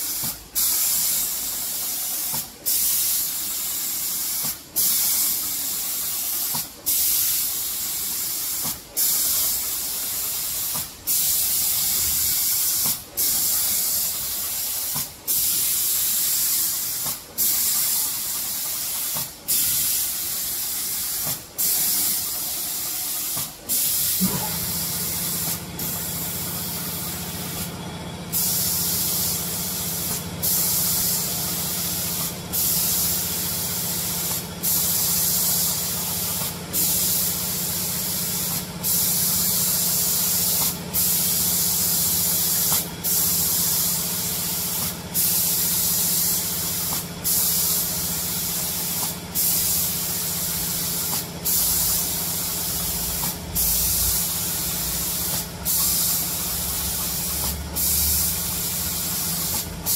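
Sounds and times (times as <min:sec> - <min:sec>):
spray gun hissing: 0:00.0 - 0:27.7, 0:28.3 - 0:59.9
low machine hum: 0:24.1 - 0:30.4.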